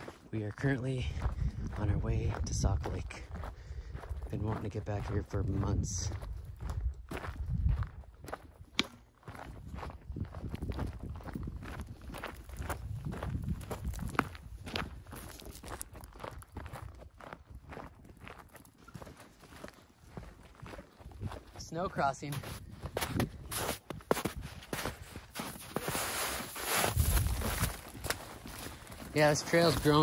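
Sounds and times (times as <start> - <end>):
boot footsteps on rocky trail: 0.0 - 30.0.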